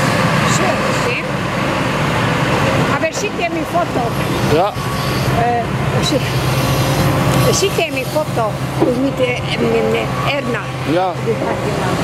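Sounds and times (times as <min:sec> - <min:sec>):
excavator diesel engine droning: 0:00.0 - 0:12.0.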